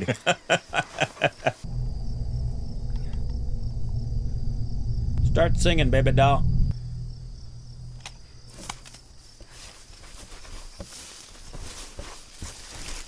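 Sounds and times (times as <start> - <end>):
crickets chirring: 0.3 - 11.8
low drone: 1.6 - 9.5
soft rustles: 8.6 - 13.0.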